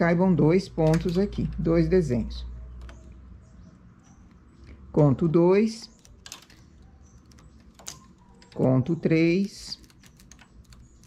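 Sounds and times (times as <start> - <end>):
knitting machine needles clicking: 5.8 - 11.0.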